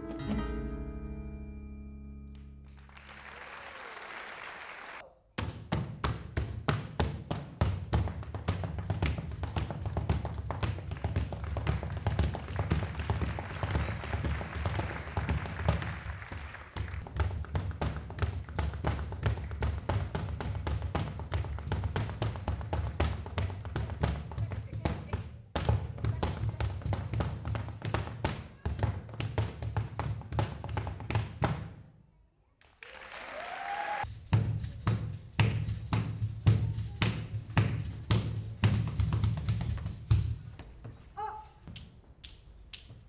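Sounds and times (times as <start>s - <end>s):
guitar accompaniment: 0.0s - 2.9s
dance stamps and heel taps: 5.4s - 31.8s, 34.3s - 41.0s.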